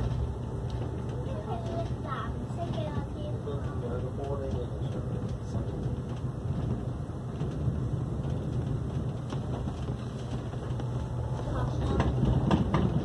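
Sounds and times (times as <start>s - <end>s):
train cabin low rumble: 0.0s - 13.0s.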